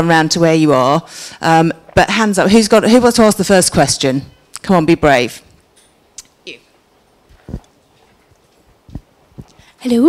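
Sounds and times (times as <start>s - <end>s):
microphone handling thumps: 7.2s - 9.7s.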